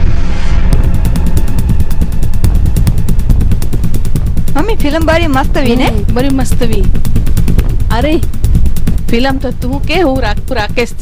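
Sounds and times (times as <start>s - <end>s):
engine idling: 0.7s - 11.0s.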